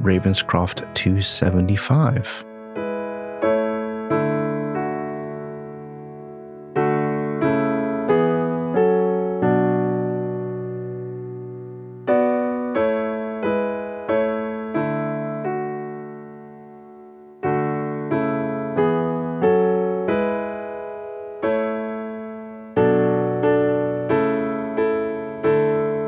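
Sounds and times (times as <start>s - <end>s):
piano playing slow chords: 0.0s - 26.0s.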